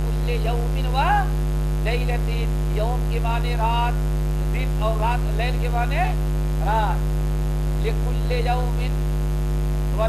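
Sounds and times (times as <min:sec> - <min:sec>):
man speaking: 0:00.0 - 0:07.1, 0:07.8 - 0:09.0
electrical mains hum: 0:00.0 - 0:10.0.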